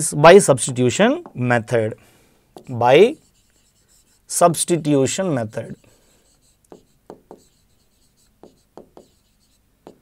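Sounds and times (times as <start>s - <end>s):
marker scratching on board: 2.6s - 10.0s.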